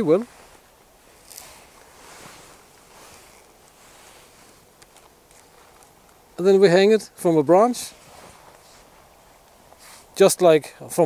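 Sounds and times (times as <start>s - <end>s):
rustling of cord on branch: 0.0s - 10.3s.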